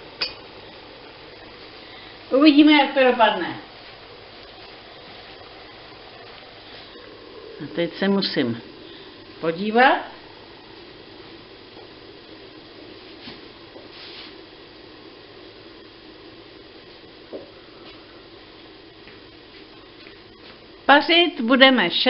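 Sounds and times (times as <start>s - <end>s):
boiling pot hissing: 0.0s - 22.0s.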